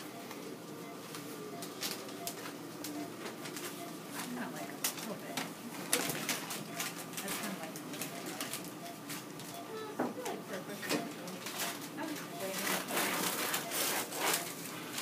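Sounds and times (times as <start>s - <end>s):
paper and plastic crinkling: 1.0s - 9.6s, 10.2s - 15.0s.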